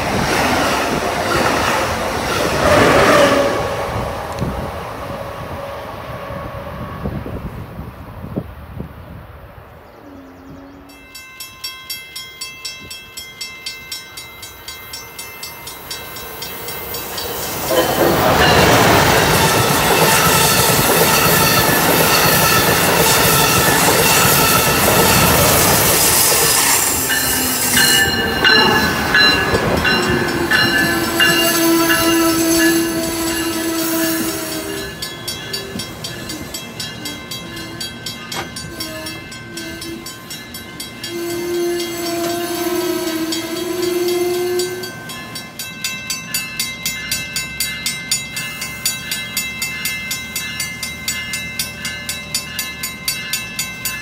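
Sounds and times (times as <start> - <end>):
train rushing past: 0.0 - 9.9, 14.5 - 54.0
train horn blast: 2.6 - 7.4, 19.2 - 37.9, 38.6 - 40.2, 41.0 - 45.0
wheels clicking over rail joints: 15.8 - 42.4.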